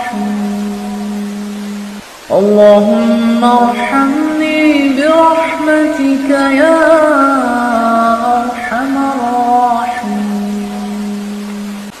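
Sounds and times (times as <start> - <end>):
voice holding low chanted note: 0.0 - 11.9
steady hiss: 0.0 - 12.0.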